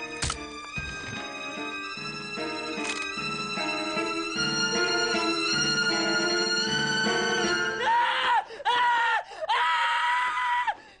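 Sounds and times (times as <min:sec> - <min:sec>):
man screaming in horror: 0:07.8 - 0:10.8.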